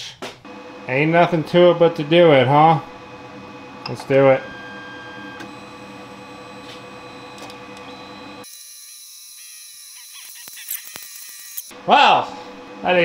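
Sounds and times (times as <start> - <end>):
machine hum with pulsing tones: 0.4 - 8.5, 11.4 - 13.0
thin high machine whine: 0.5 - 8.6.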